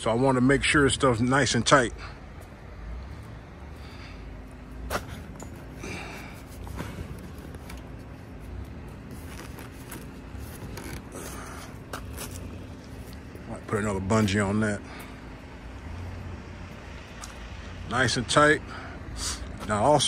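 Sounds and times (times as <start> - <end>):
tarp and cords clicking and scraping: 4.9 - 13.5.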